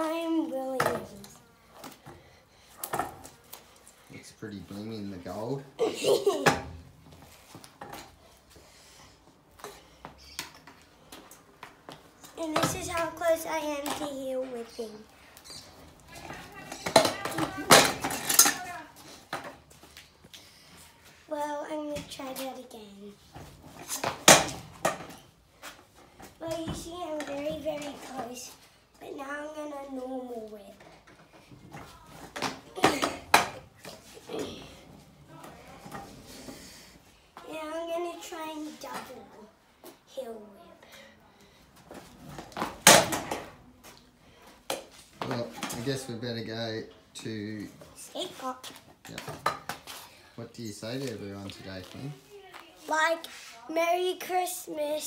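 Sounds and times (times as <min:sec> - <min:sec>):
scooter clattering on concrete: 0:00.0 - 0:02.2, 0:09.6 - 0:15.1, 0:15.8 - 0:19.7, 0:23.4 - 0:25.3, 0:26.1 - 0:36.6, 0:44.7 - 0:46.5, 0:48.1 - 0:50.1
scooter clattering onto concrete: 0:16.2 - 0:19.5.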